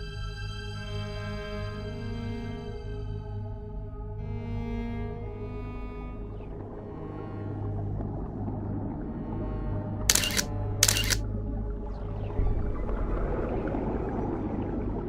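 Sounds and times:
low background music: 0.0 - 15.0
camera shutter clicks: 10.1 - 11.2.

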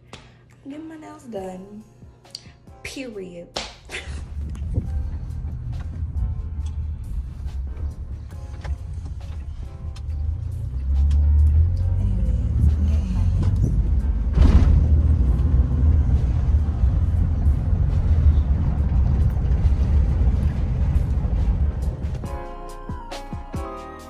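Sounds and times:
background music: 0.4 - 24.0
car rumbling inside cabin: 4.1 - 22.3.

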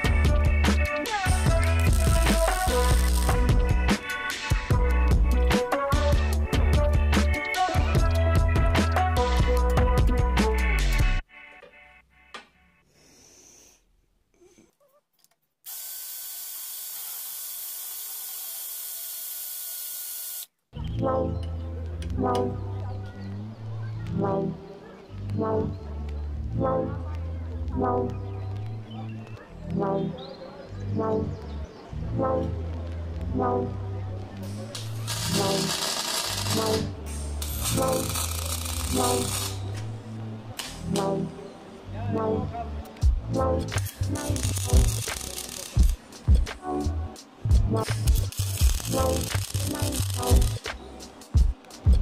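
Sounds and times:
background music with steady beat: 0.0 - 12.9, 20.8 - 52.0
welding arc crackling: 1.6 - 3.6, 15.7 - 20.6, 34.8 - 39.8, 43.9 - 46.2, 47.9 - 50.7
cordless drill whirring: 15.7 - 20.5.

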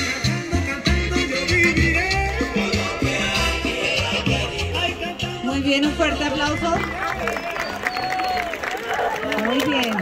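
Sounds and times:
crowd voices: 0.0 - 10.0
audience applauding: 6.8 - 10.0.

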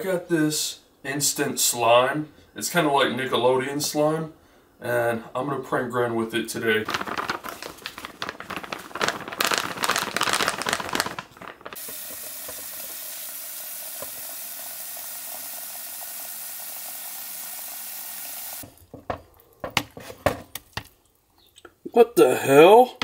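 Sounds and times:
foil packet rustling: 6.5 - 13.2
tap water running into bucket: 11.8 - 19.0.

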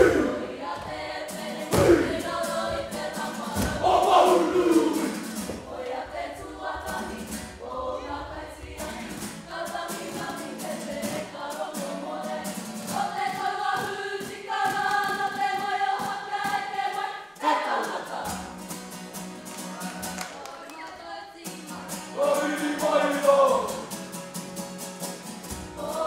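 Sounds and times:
guitar accompaniment: 0.0 - 20.8, 21.4 - 26.0
group singing: 0.0 - 24.0, 25.4 - 26.0.

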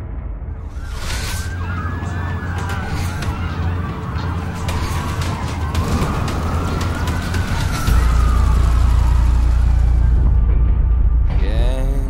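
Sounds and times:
police sirens wailing: 0.6 - 10.6
brief whoosh: 0.7 - 1.6
deep steady rumble: 1.9 - 12.0.

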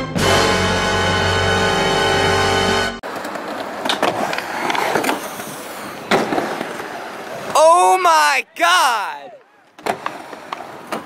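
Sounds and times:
music: 0.0 - 3.0
skateboard wheels rolling: 1.9 - 8.0, 9.3 - 11.0
skateboard clacks: 3.0 - 7.6, 9.4 - 11.0
loud yell: 7.5 - 9.6.

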